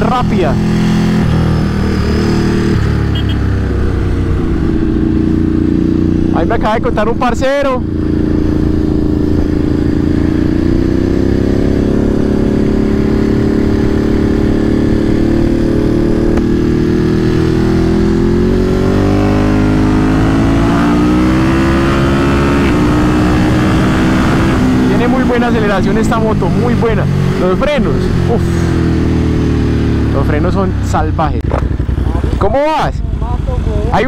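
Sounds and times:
motorcycle engine accelerating: 0.0s - 34.0s.

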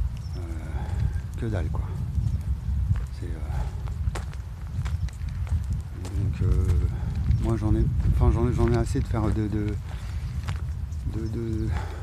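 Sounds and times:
constant low rumble: 0.0s - 12.0s
footsteps crunching on gravel: 0.8s - 12.0s.

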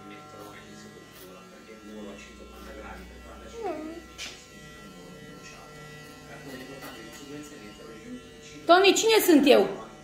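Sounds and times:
electric hair clippers buzzing: 0.0s - 10.0s.

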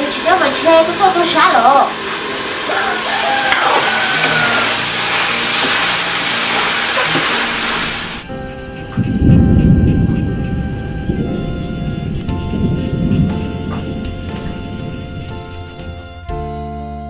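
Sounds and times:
beans sizzling in a wok: 0.0s - 8.7s
deep rumbling swell: 0.0s - 16.3s
music: 0.0s - 17.0s.

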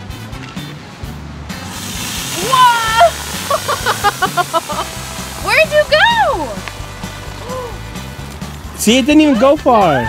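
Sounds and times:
background music: 0.0s - 10.0s
soda jetting with hiss: 1.6s - 8.0s.

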